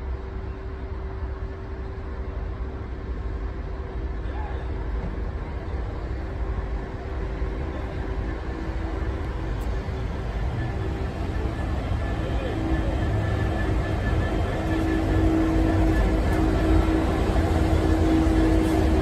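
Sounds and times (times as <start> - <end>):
diesel locomotive engine hum: 0.0 - 19.0.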